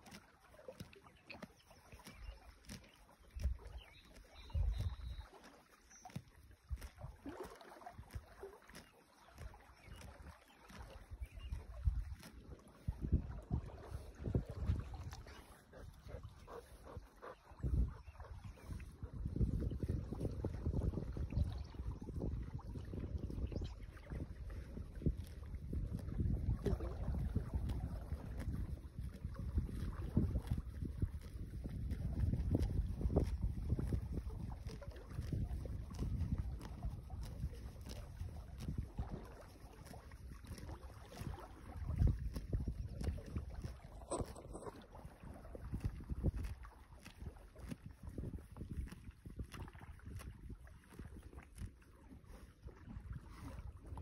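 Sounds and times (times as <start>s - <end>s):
horse chewing grass: 0.0s - 54.0s
wind buffeting microphone: 1.5s - 5.3s, 9.3s - 54.0s.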